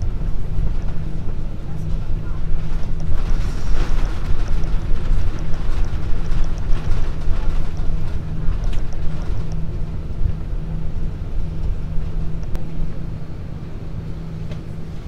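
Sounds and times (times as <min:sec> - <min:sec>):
aircraft cabin engine rumble: 0:00.0 - 0:15.0.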